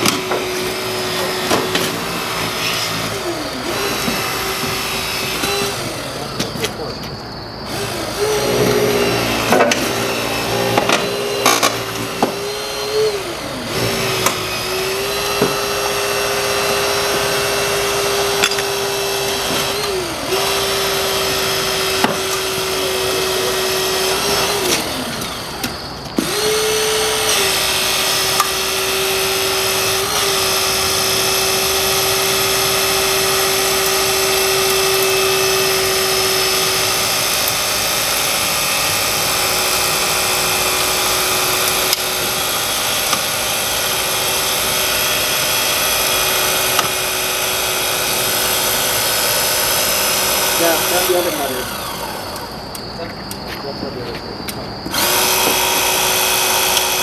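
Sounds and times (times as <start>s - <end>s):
hydraulic cutter motor whine: 0.0s - 57.0s.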